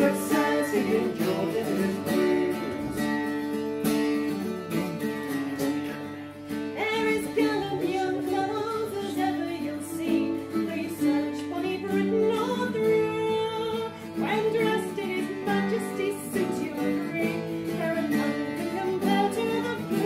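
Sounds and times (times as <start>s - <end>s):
man singing: 0.0s - 3.4s
woman singing folk song: 0.0s - 3.8s, 6.5s - 20.0s
mandolin playing: 0.0s - 20.0s.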